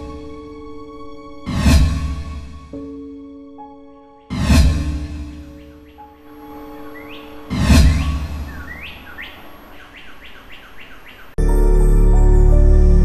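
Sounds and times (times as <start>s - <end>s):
swooshing hit: 1.5s - 2.6s, 4.3s - 5.5s
short rising bird chirps: 5.5s - 11.4s.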